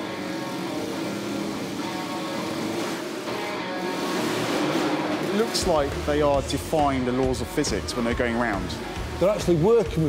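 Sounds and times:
motorcycle engine running: 0:00.0 - 0:10.0
music: 0:00.0 - 0:10.0.

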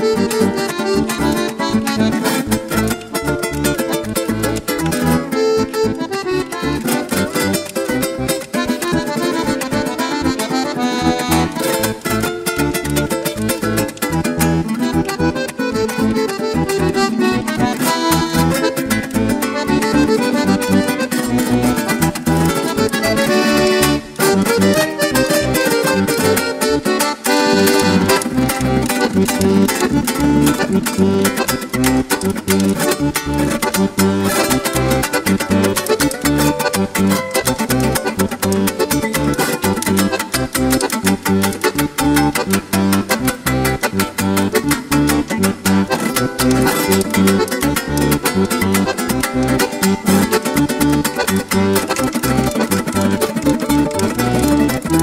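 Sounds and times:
accordion melody: 0:00.0 - 0:55.0
bass: 0:00.0 - 0:55.0
strummed string instrument: 0:00.0 - 0:55.0.

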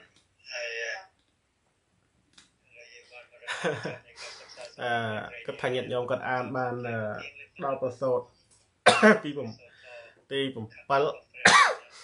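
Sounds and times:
man speaking: 0:00.5 - 0:01.2, 0:02.6 - 0:12.0
man coughing: 0:08.8 - 0:09.4, 0:11.4 - 0:12.0
man clearing throat: 0:08.9 - 0:09.3, 0:11.4 - 0:12.0.

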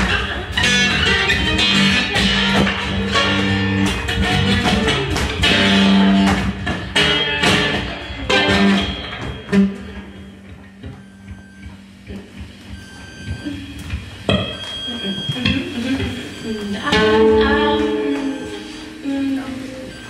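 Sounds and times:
plucked strings: 0:00.0 - 0:13.4
high electronic tones: 0:00.0 - 0:20.0.

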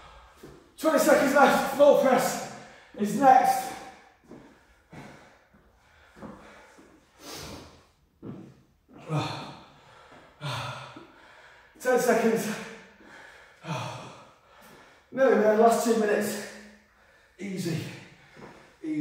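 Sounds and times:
man breathing hard: 0:00.0 - 0:00.8, 0:02.4 - 0:11.8, 0:12.4 - 0:15.2, 0:16.5 - 0:19.0.

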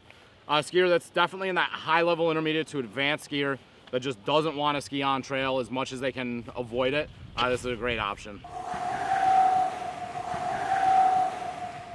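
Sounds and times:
hissing whoosh: 0:08.4 - 0:11.9
held tone: 0:08.5 - 0:11.9.

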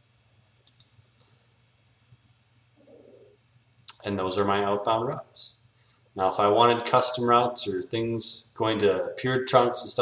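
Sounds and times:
steady low hum: 0:00.0 - 0:10.0
computer mouse clicks: 0:00.6 - 0:01.3.

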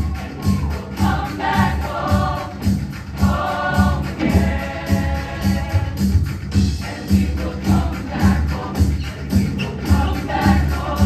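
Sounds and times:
band with heavy bass beat: 0:00.0 - 0:11.0
choir singing in harmony: 0:00.0 - 0:11.0.

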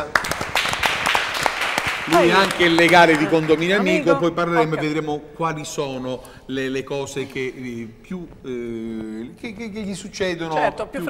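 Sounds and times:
people clapping: 0:00.0 - 0:04.3.

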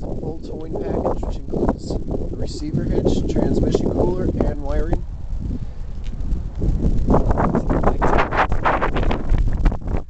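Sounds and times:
wind rumbling on microphone: 0:00.0 - 0:10.0.

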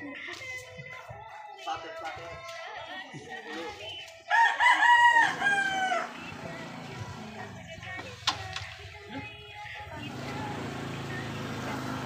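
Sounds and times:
rooster crowing: 0:04.3 - 0:06.3.

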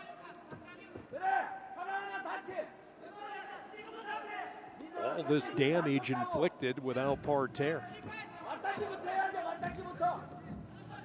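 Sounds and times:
faint arena background noise: 0:00.0 - 0:11.0
man calling out drawn-out: 0:05.2 - 0:07.9.

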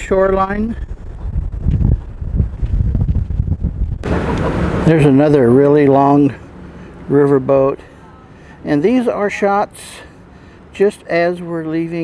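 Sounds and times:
wind buffeting microphone: 0:00.0 - 0:04.8.

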